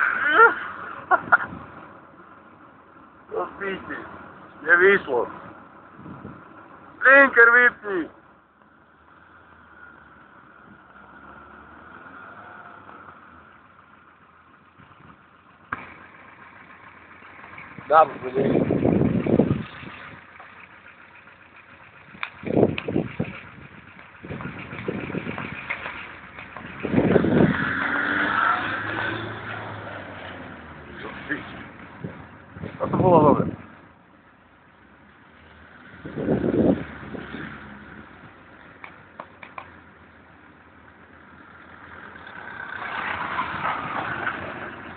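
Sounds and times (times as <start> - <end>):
distant car engine: 0.0 - 44.9.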